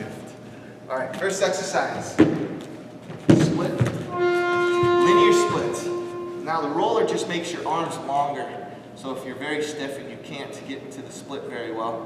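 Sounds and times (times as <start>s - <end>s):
dull thumps on exercise mat: 2.2s - 4.1s
timer buzzing tone: 4.1s - 7.3s.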